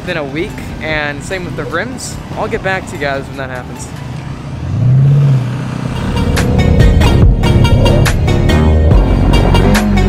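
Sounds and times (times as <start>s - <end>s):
car engine revving high: 4.2s - 8.2s
electronic music with heavy beat: 6.0s - 10.0s.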